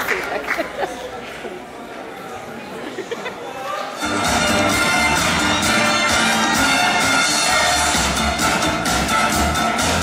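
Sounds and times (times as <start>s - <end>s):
audience chatter: 0.0s - 10.0s
dance music with heavy bass: 4.0s - 10.0s.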